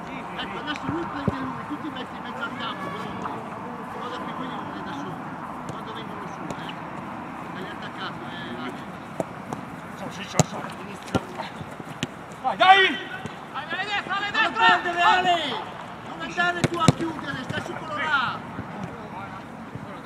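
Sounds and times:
players shouting: 0:00.0 - 0:20.0
ball being kicked: 0:09.1 - 0:12.2, 0:16.5 - 0:17.8.

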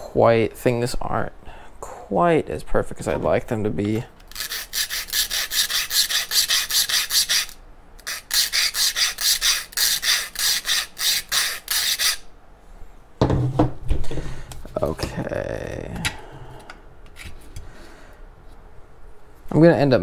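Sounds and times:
hand file rasping: 0:04.3 - 0:12.2.

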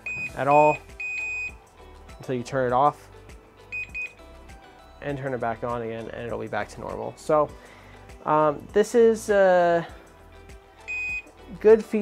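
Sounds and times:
short high beeps: 0:00.0 - 0:01.5, 0:10.9 - 0:11.3
background music: 0:00.0 - 0:12.0.

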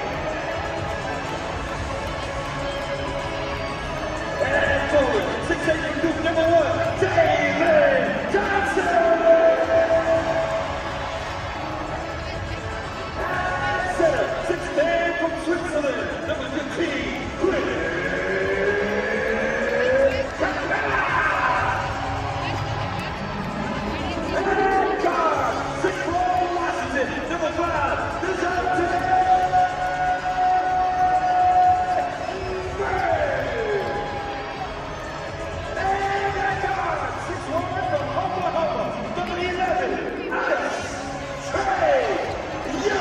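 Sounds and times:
crowd noise: 0:00.0 - 0:43.0
announcer's amplified drawn-out call: 0:03.2 - 0:43.0.

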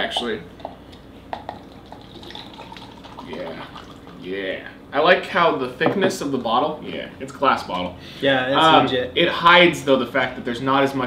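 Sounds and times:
liquid pouring into plastic cup: 0:00.2 - 0:04.2.

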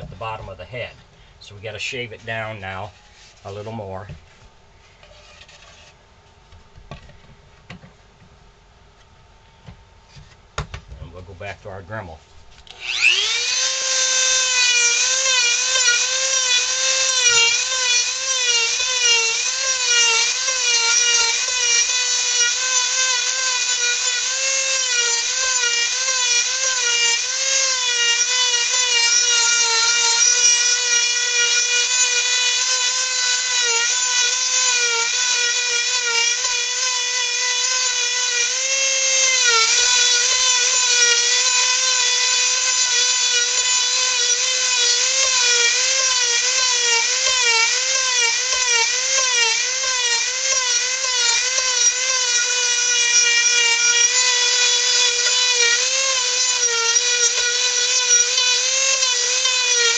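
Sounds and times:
rotary tool whining into wood: 0:12.6 - 0:59.9.

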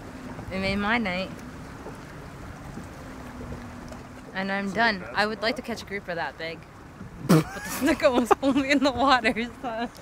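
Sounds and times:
wind around a boat: 0:00.0 - 0:10.0.

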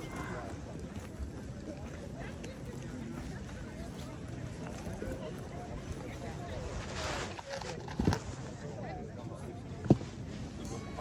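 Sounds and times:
faint background chatter: 0:00.0 - 0:11.0.

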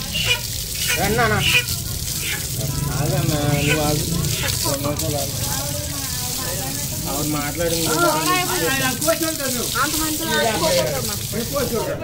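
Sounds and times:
water gushing from tap: 0:00.0 - 0:12.0
water splashing on concrete: 0:00.0 - 0:12.0.

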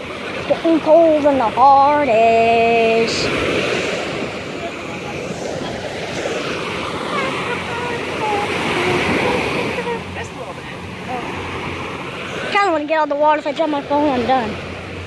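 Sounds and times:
waves breaking on beach: 0:00.0 - 0:15.0.

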